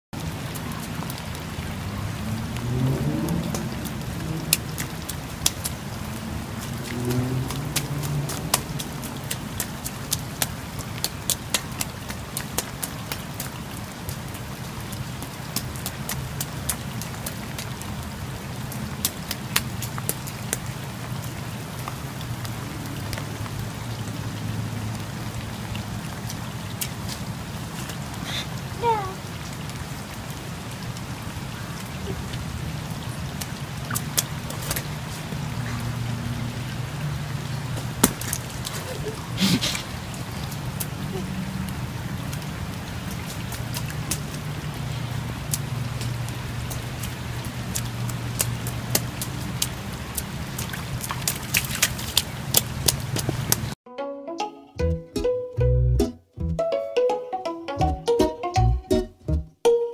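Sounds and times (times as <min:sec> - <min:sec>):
light rain falling: 0:00.2 - 0:53.8.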